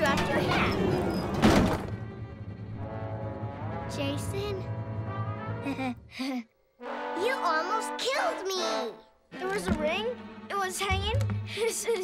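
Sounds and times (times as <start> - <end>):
background music with held notes: 6.8 - 12.0.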